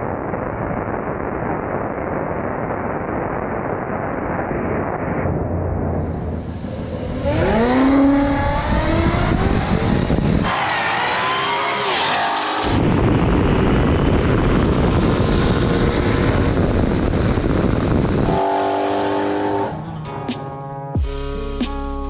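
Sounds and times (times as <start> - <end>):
wind and road noise: 0.0 - 21.0
drag car engines accelerating: 6.0 - 20.8.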